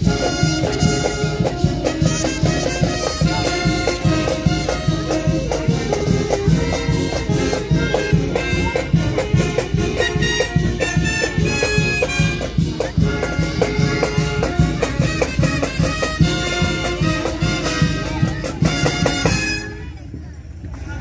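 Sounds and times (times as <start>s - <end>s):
marching band playing: 0.0s - 20.2s.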